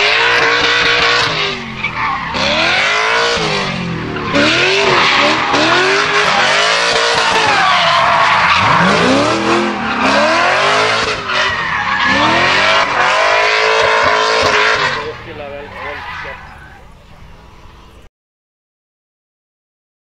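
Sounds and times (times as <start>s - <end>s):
car engine revving: 0.0s - 18.0s
tyres screeching on tarmac: 0.0s - 18.1s.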